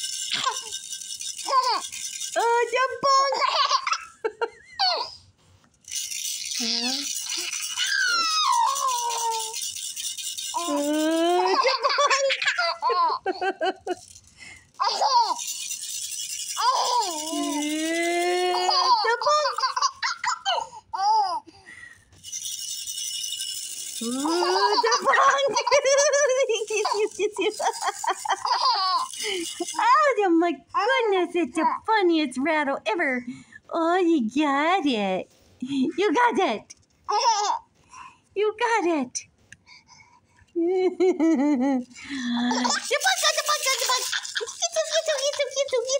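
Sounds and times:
baby rattle shaking: 0.0s - 5.1s, 5.7s - 31.9s, 36.6s - 38.1s, 41.6s - 45.9s
person's voice: 2.4s - 3.5s, 6.6s - 7.0s, 10.6s - 12.4s, 17.2s - 19.6s, 24.0s - 27.9s, 29.2s - 36.7s, 42.0s - 45.9s
high-pitched voice squealing and laughing: 6.6s - 9.6s, 10.6s - 14.0s, 16.6s - 21.2s, 24.0s - 30.0s, 42.4s - 45.9s.

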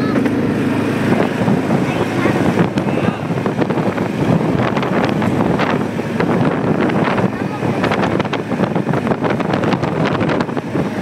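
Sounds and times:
quad engine running: 0.0s - 11.0s
wind buffeting microphone: 0.0s - 11.0s.

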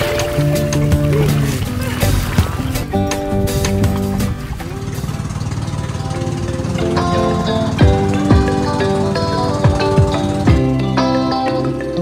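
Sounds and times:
background music: 0.0s - 12.0s
boat engine throbbing: 0.0s - 12.0s.

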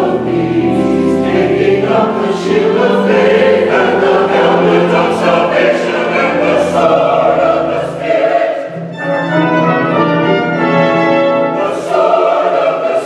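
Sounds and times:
brass chords: 0.0s - 13.0s
church choir singing: 0.0s - 13.0s.

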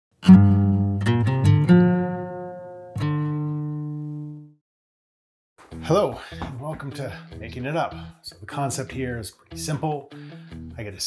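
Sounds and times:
guitar jingle: 0.2s - 4.6s.

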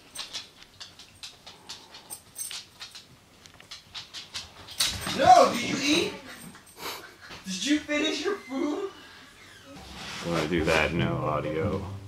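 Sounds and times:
dog claws clicking on wooden floor: 0.0s - 6.1s.

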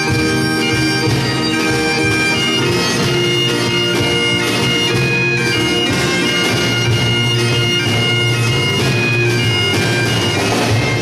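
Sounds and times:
bagpipes playing folk melody: 0.0s - 11.0s
bodhran: 0.0s - 11.0s
drum: 7.9s - 11.0s.

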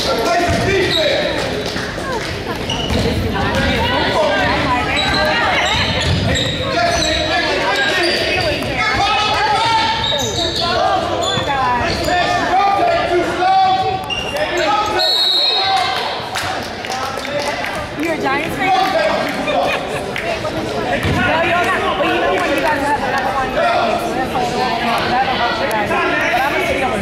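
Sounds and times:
indistinct echoing voices: 0.0s - 27.0s.

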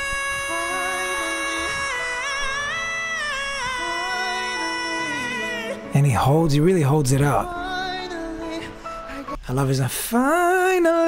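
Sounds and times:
backing music: 0.0s - 10.6s
man singing long high note: 0.0s - 11.0s.

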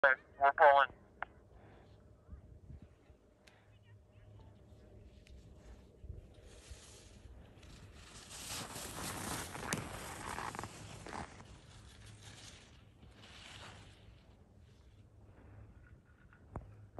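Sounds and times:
ski edges scraping over snow: 6.2s - 14.3s.

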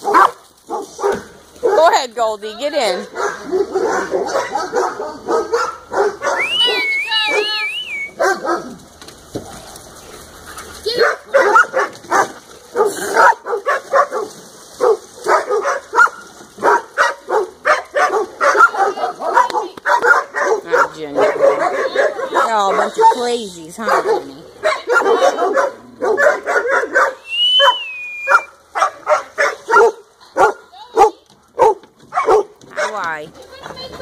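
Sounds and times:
dogs barking: 0.0s - 2.0s, 2.8s - 8.8s, 10.8s - 33.2s
high wavering dog whine: 6.2s - 8.2s, 27.2s - 28.5s.

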